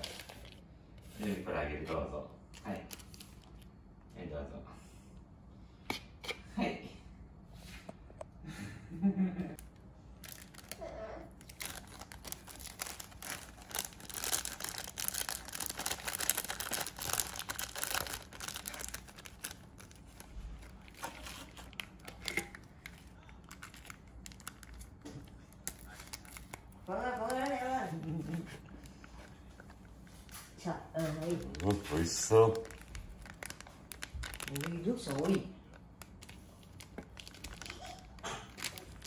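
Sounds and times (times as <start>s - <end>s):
plastic sachets crinkling and tearing: 0.0s - 0.7s, 2.4s - 3.7s, 9.6s - 29.8s, 31.0s - 39.0s.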